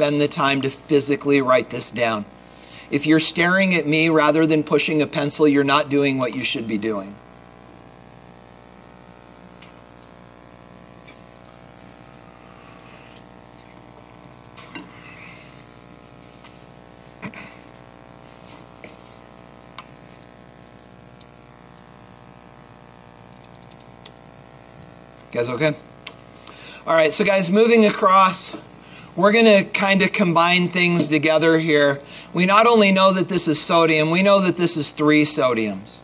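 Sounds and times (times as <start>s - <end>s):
steady hum: 0.0s - 36.0s.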